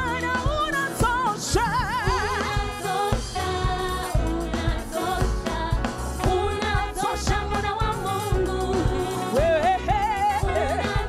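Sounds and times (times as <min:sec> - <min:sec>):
bass line: 0:00.0 - 0:11.0
drum beats: 0:00.0 - 0:11.0
women singing gospel song: 0:00.0 - 0:11.0.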